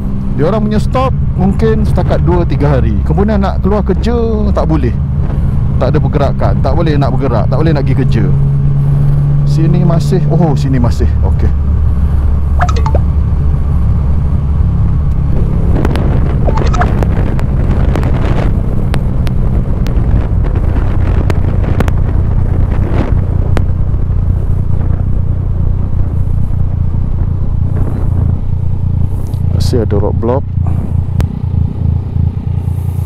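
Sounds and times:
motorcycle engine cruising: 0.0 - 33.0
wind rushing on microphone: 10.8 - 32.1.

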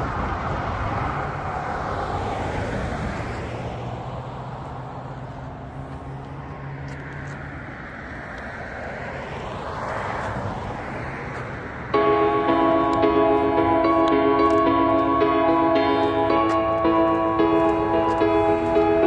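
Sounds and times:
vehicle approaching: 0.0 - 19.0
vehicle passing by: 0.0 - 19.0.

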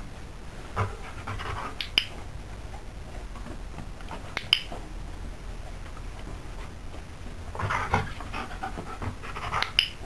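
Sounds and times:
dog panting: 0.7 - 2.0, 7.6 - 10.0
training clicker click: 4.4 - 4.7.

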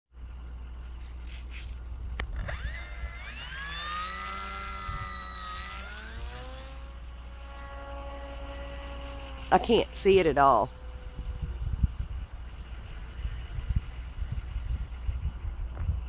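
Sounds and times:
electric motor and propeller whine: 2.2 - 16.0.

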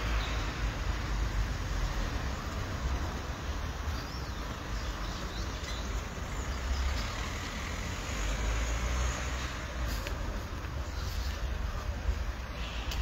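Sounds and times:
cars driving on city street: 0.0 - 13.0
low traffic rumble: 0.0 - 13.0.

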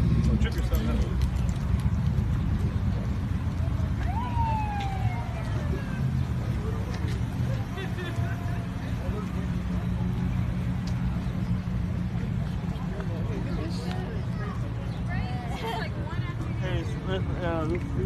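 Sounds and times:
engine low rumble: 0.0 - 18.0
siren whoop: 4.0 - 6.1.

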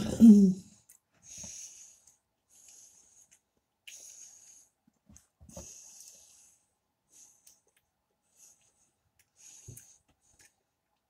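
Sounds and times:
breathing through the nose: 1.2 - 4.8.

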